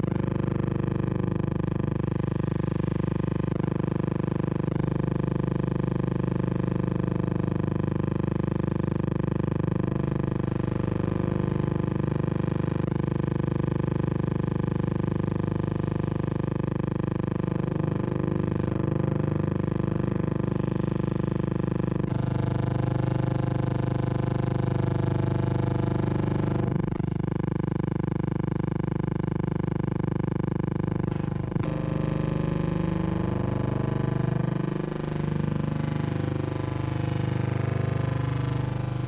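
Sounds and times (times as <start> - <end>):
engine drone: 0.0 - 1.5, 30.9 - 39.0.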